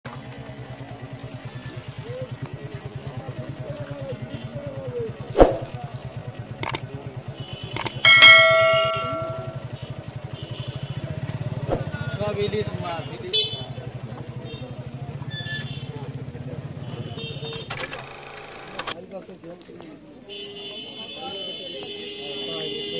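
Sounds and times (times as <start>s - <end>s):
sharp clicks: 6.6s - 6.8s, 7.8s - 8.0s
bell-like ding: 8.1s - 9.6s.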